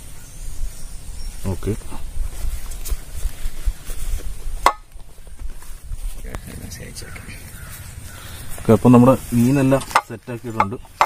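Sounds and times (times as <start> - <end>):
banana leaf rustling and crinkling: 0.0 - 11.0
low microphone rumble: 0.0 - 11.0
sharp crackle: 0.0 - 11.0.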